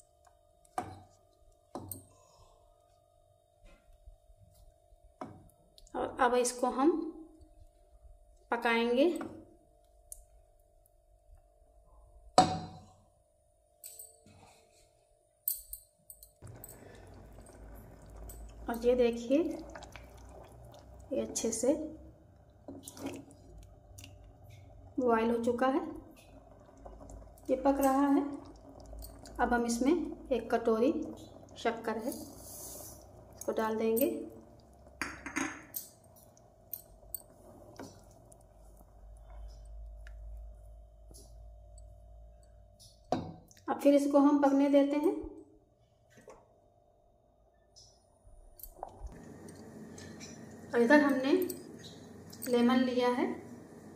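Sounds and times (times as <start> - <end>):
mixture simmering in pan: 16.4 - 42.3, 48.8 - 53.9.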